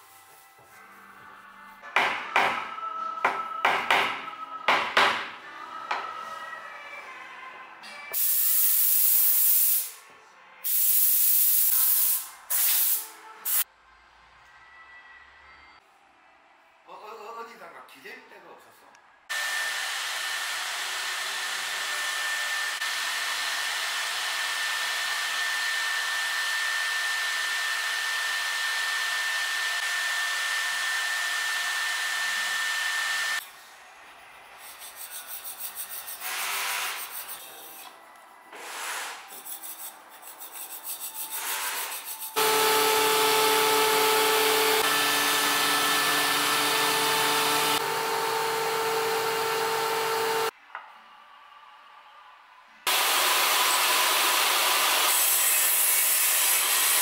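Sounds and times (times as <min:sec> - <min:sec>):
woodworking machine whining: 0:19.3 - 0:33.4, 0:42.4 - 0:50.5, 0:52.9 - 0:57.0.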